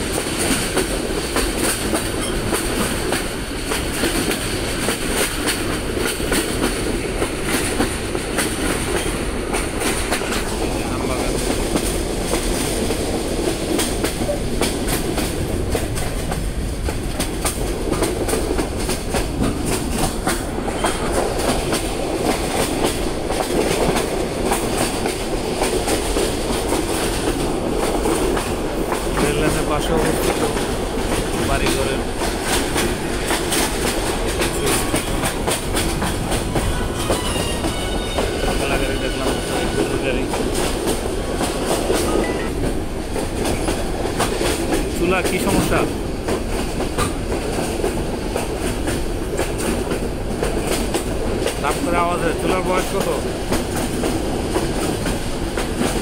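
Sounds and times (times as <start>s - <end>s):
train rumble: 0.0s - 56.0s
wheels clickety-clack on rails: 0.0s - 56.0s.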